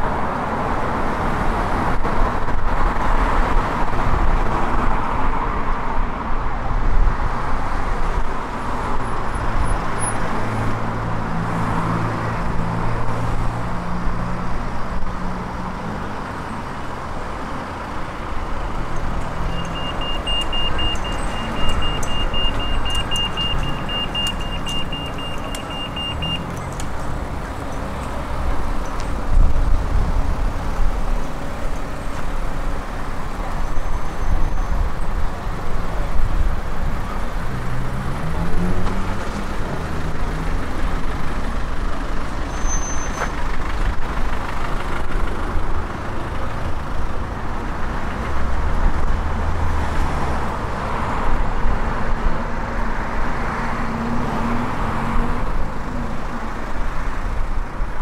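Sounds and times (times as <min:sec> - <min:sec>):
cars passing: 0:00.0 - 0:58.0
crossing signal beeping rapidly: 0:18.9 - 0:27.0.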